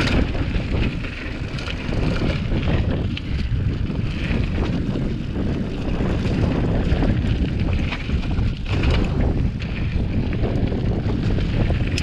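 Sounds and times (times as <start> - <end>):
mountain bike rolling on gravel: 0.0 - 12.0
stones and bike rattling: 0.0 - 12.0
wind buffeting microphone: 0.0 - 12.0.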